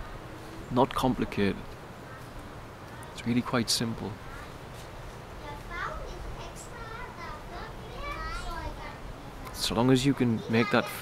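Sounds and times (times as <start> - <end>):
children calling and chattering: 4.0 - 11.0.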